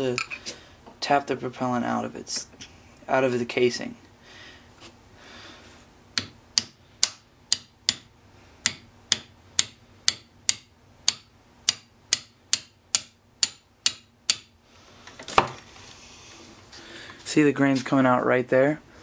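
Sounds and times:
hammer tapping metal rod: 6.2s - 14.6s.

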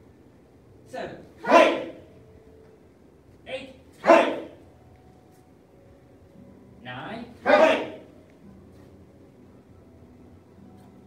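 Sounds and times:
students shouting kiai: 1.4s - 2.1s, 4.0s - 4.6s, 7.4s - 8.1s.

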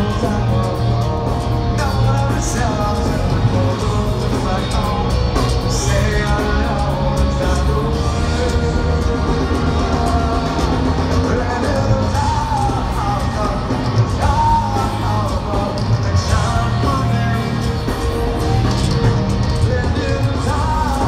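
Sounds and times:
live rock band playing: 0.0s - 21.0s
singer holding long notes: 0.0s - 21.0s.

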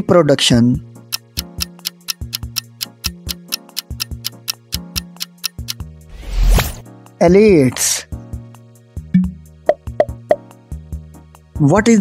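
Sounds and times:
clock-like ticking: 1.0s - 5.8s.

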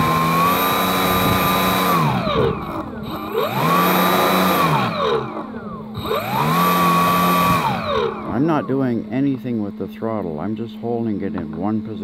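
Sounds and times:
electric motor and propeller whine: 0.0s - 12.0s.

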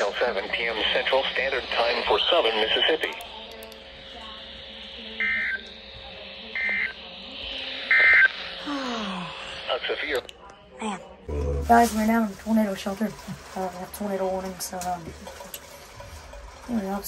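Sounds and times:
buzzing data bursts: 6.5s - 8.6s.

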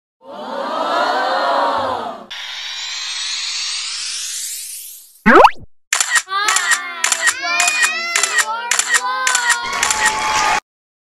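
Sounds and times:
rising whoosh: 2.3s - 5.6s
wavering many-layered sound: 2.3s - 7.4s.

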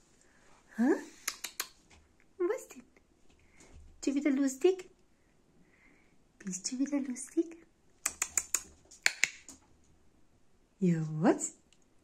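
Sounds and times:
sharp clicks: 1.2s - 1.8s, 8.0s - 9.6s.

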